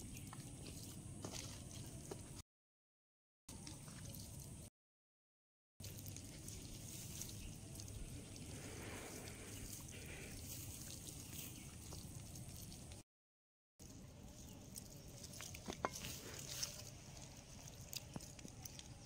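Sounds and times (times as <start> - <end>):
hands squelching in wet marinade: 5.8 - 13.0, 13.8 - 19.0.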